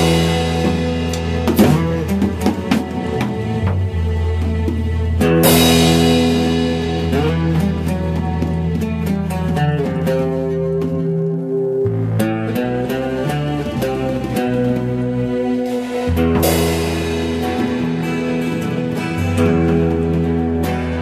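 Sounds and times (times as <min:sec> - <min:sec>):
cymbal crash: 0:00.0 - 0:03.2
rock band playing: 0:00.0 - 0:21.0.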